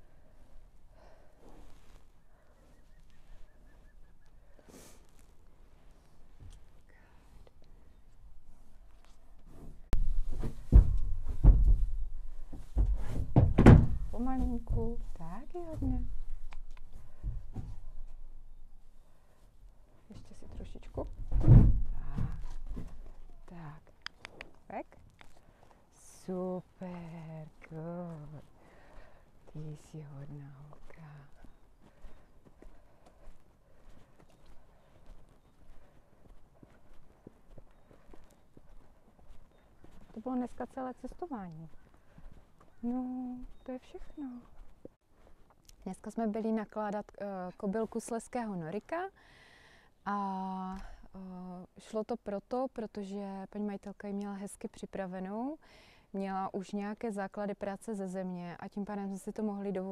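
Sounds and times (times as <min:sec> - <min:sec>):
hooves on muddy track: 0:00.0 - 0:19.3, 0:20.2 - 0:48.3
hooves thudding on wooden ramp: 0:09.4 - 0:18.4, 0:20.5 - 0:23.5.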